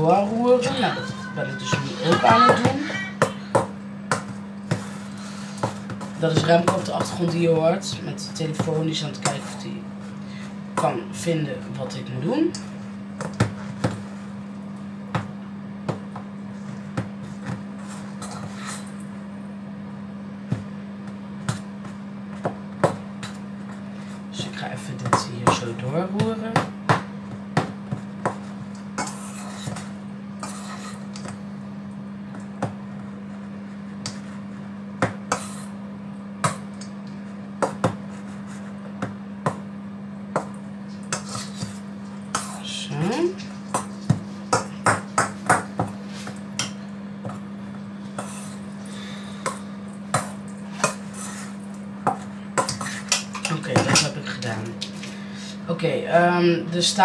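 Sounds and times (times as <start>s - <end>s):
steady low hum: 0.0s - 57.0s.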